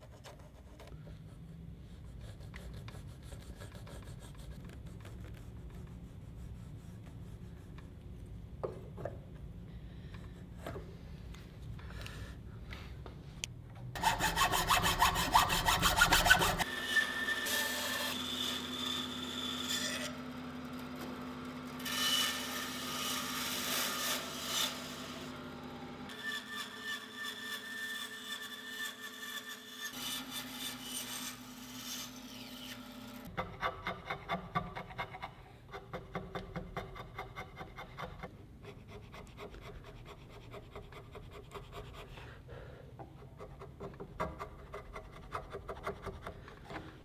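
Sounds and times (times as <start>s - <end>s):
bandsaw cutting wood: 14.0s - 20.3s
hand chisel paring wood: 33.4s - 41.7s, 43.0s - 46.9s.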